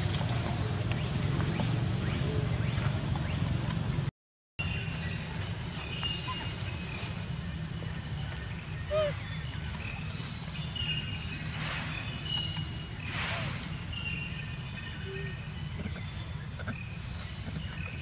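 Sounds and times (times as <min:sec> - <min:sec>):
insects droning: 0:04.6 - 0:18.0.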